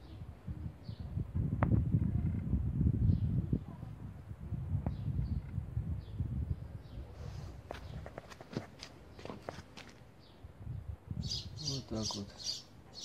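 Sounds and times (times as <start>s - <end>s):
footsteps on gritty concrete: 7.6s - 10.1s.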